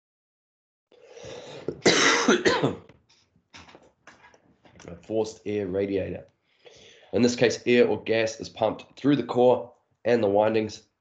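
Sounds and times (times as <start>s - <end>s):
man coughing: 1.2s - 2.9s.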